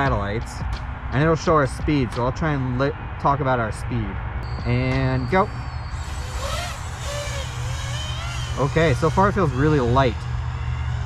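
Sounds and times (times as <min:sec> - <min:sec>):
steady low rumble: 0:00.0 - 0:11.0
quadcopter motors whining: 0:04.4 - 0:11.0.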